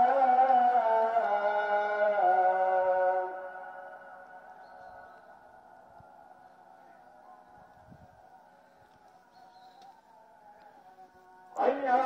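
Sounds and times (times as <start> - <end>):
call to prayer over loudspeakers: 0.0 - 12.0.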